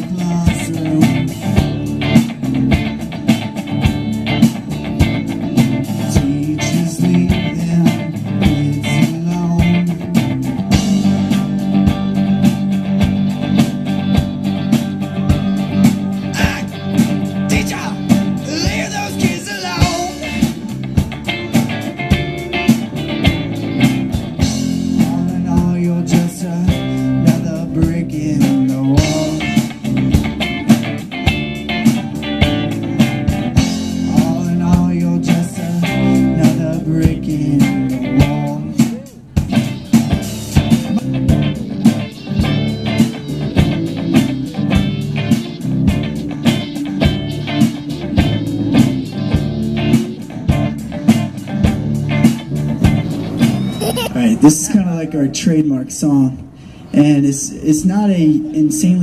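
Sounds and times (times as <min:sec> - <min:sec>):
electric guitar: 0:00.0 - 0:54.5
bass guitar: 0:00.0 - 0:59.0
drum beat: 0:38.2 - 0:45.0, 0:53.8 - 0:54.2.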